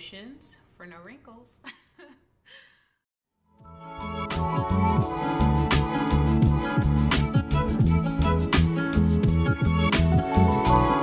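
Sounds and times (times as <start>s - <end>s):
woman laughing breathily: 1.6s - 3.0s
background music: 3.6s - 11.0s.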